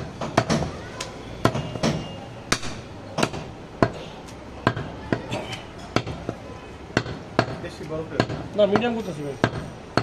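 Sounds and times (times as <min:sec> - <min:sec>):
cleaver chopping meat on wood: 0:07.0 - 0:07.6, 0:08.2 - 0:10.0.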